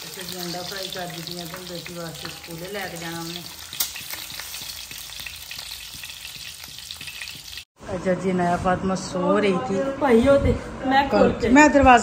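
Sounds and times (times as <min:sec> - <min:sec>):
egg sizzling in oil: 0:00.0 - 0:07.7.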